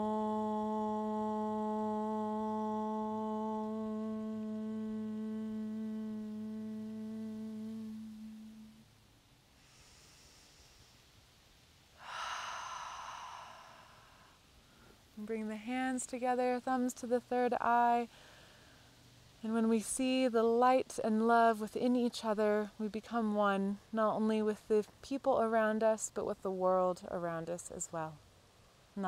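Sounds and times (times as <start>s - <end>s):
woman chanting om: 0.0s - 8.8s, 15.2s - 18.2s, 19.4s - 28.2s
breathy rush of air: 9.5s - 15.2s.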